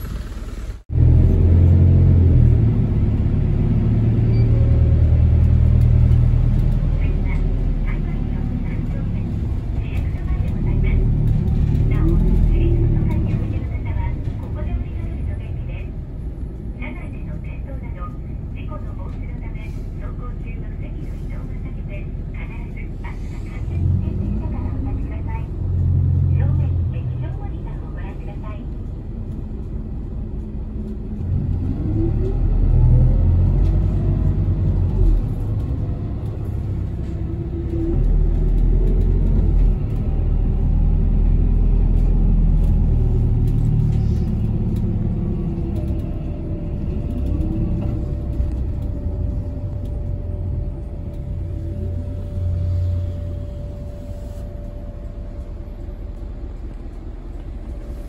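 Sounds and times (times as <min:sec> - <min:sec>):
bus engine and road rumble: 0:00.0 - 0:58.0.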